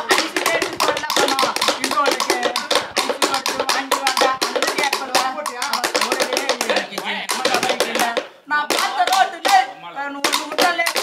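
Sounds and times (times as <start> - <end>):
bamboo sticks striking logs: 0.0 - 11.0
man singing: 0.0 - 11.0.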